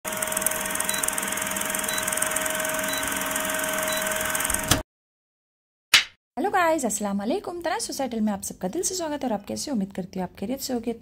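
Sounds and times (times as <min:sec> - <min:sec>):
film projector whirring: 0:00.1 - 0:04.8.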